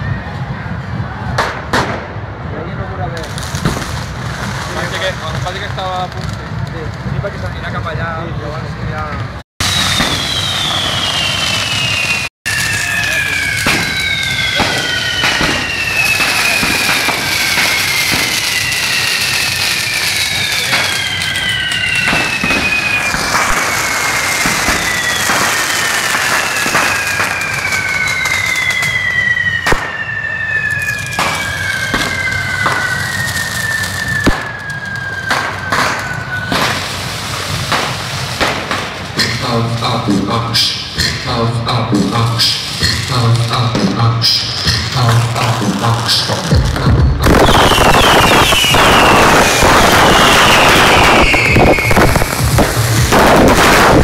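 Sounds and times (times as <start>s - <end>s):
firework bangs: 0.0s - 8.2s, 8.9s - 40.0s, 42.4s - 54.0s
fireworks hissing and crackling: 2.6s - 41.0s, 42.4s - 43.6s, 44.3s - 54.0s
falling firework whistles: 9.6s - 39.4s, 40.6s - 41.0s, 42.4s - 43.0s, 44.2s - 54.0s.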